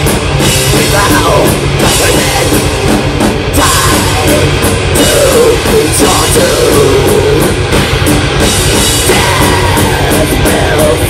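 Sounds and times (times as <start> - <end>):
distorted electric guitars: 0.0 - 11.0
drum kit: 0.0 - 11.0.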